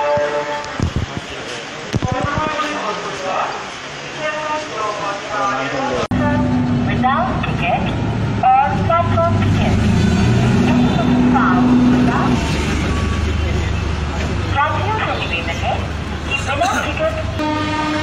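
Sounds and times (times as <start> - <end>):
train diesel engine droning: 0.0 - 1.8, 2.6 - 18.0
crowd talking: 0.4 - 17.4.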